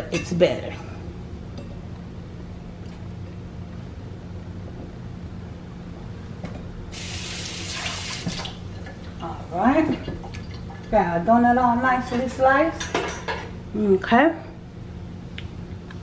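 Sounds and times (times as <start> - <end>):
steady low hum: 0.0 - 16.0
water running: 6.9 - 11.6.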